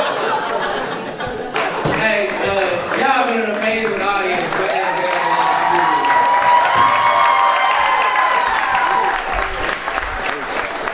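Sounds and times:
audience applauding: 0:01.5 - 0:10.9.

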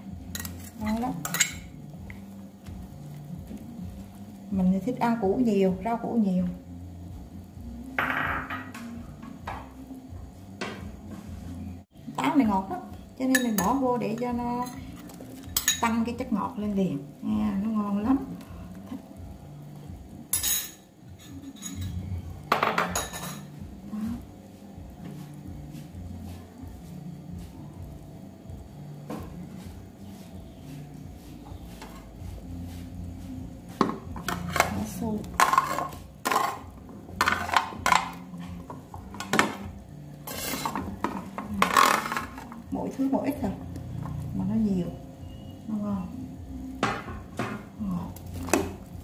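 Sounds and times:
metal spoon clinking against pot: 0:00.3 - 0:01.8, 0:13.3 - 0:13.8, 0:15.4 - 0:15.9, 0:20.3 - 0:22.0, 0:22.6 - 0:23.5.

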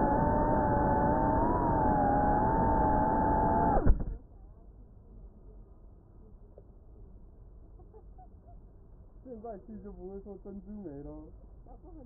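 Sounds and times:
drone propellers whining: 0:00.0 - 0:04.2.

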